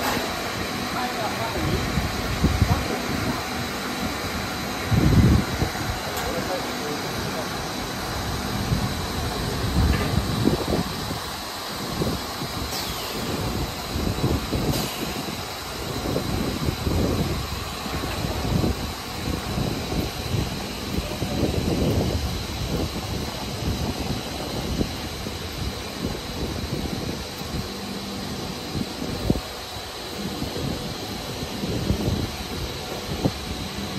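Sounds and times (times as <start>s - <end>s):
machine noise: 0.0s - 33.9s.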